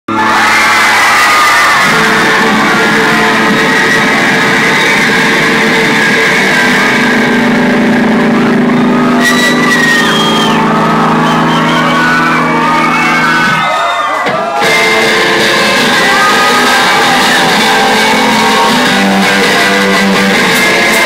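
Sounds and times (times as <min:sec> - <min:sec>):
crowd shouting and whooping: 0:00.1 - 0:21.0
rock band playing guitar chords: 0:00.1 - 0:21.0.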